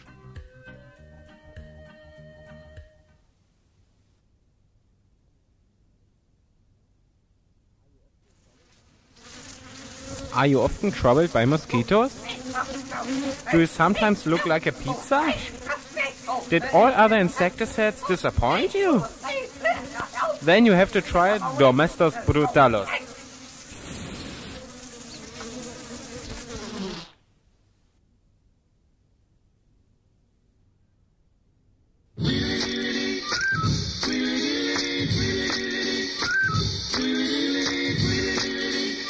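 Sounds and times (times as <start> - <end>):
mosquito buzzing: 9.0 - 27.2, 32.2 - 39.0.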